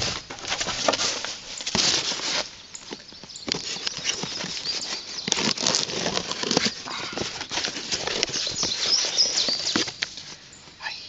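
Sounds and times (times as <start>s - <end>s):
cardboard and paper rustling: 0.0s - 10.5s.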